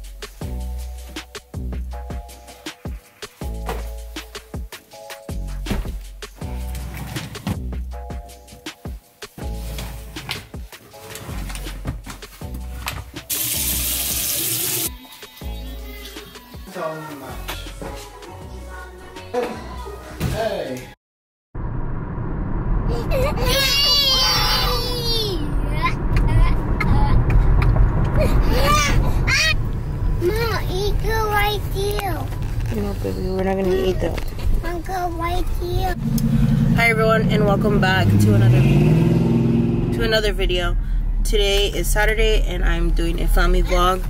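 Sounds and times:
background music with a beat: 0:00.0 - 0:20.3
car road and engine rumble: 0:21.6 - 0:44.0.

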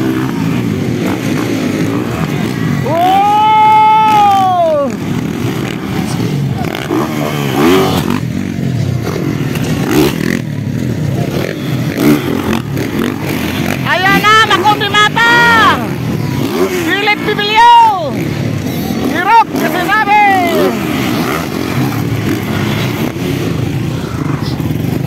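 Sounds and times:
dirt bike engines revving: 0:00.0 - 0:25.0.

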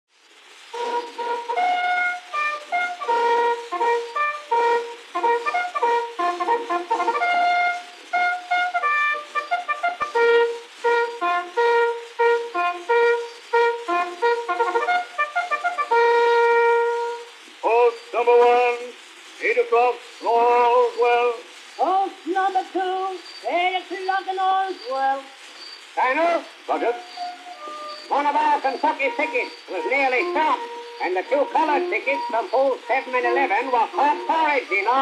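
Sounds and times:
record surface hiss: 0:00.1 - 0:35.0
brass bugle call: 0:00.7 - 0:22.8, 0:26.0 - 0:35.0.

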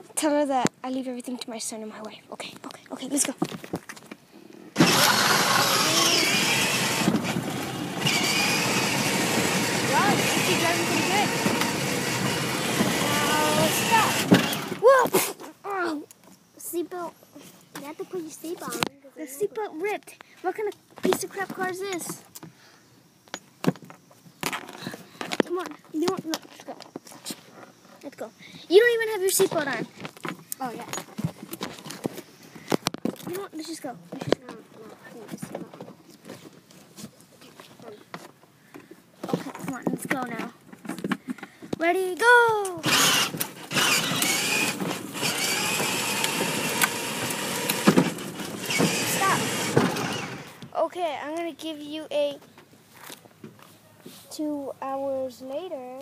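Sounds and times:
car moving off rushing: 0:04.8 - 0:14.9, 0:42.8 - 0:50.6
sharp clicks and knocks: 0:42.6 - 0:50.7.

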